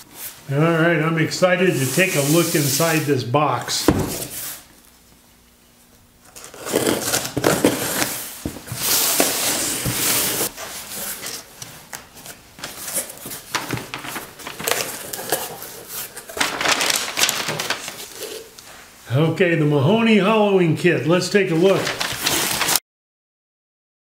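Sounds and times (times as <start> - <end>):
packing tape tearing: 6.2 - 11.5, 12.6 - 18.6, 21.8 - 22.8
packing paper crinkling: 12.2 - 18.6, 21.4 - 22.8.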